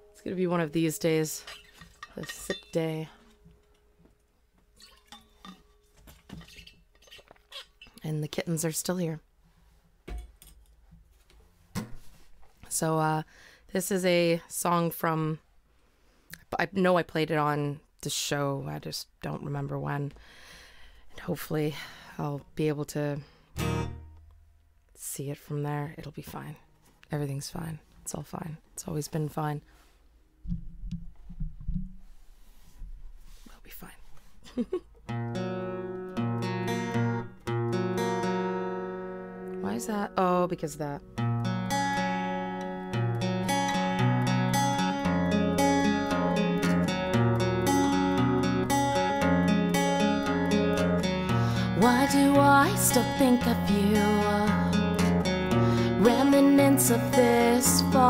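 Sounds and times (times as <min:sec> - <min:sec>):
person speaking: 0:00.2 - 0:03.3, 0:39.6 - 0:41.1
metal water bottle clinking: 0:01.4 - 0:03.3, 0:04.8 - 0:07.5
faint rustling: 0:29.6 - 0:34.6
microphone handling bumps: 0:30.4 - 0:32.2.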